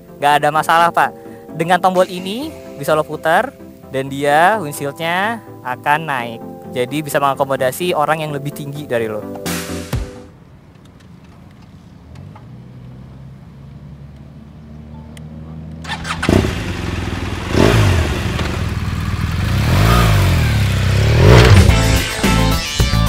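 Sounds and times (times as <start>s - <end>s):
motorcycle engine revving: 12.1s - 22.2s.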